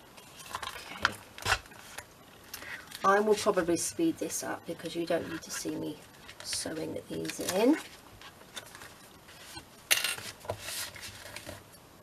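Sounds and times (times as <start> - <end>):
paper rustling: 5.1 - 11.7.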